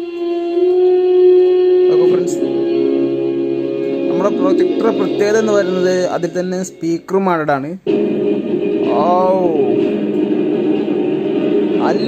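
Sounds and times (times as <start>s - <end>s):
music: 0.0s - 12.0s
steady electronic startup tone: 1.9s - 12.0s.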